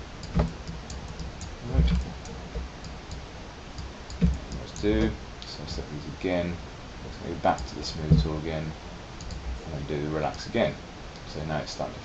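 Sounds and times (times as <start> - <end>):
computer mouse clicks: 0.2 - 3.2, 9.2 - 9.4
short knocks: 4.2 - 5.2.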